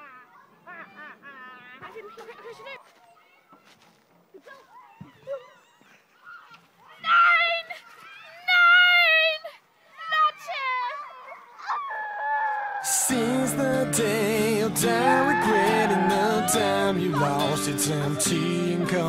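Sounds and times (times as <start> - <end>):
girl squealing and shrieking: 4.7 - 12.8.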